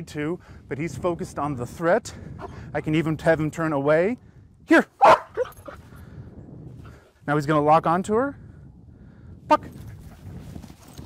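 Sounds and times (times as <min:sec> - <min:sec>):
dog barking: 0:05.0 - 0:05.7
dog yip: 0:05.0 - 0:05.8.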